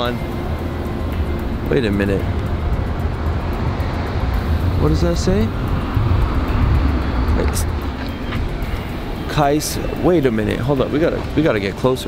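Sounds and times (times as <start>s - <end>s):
street traffic rumble: 0.0s - 12.0s
wind buffeting microphone: 0.0s - 12.0s.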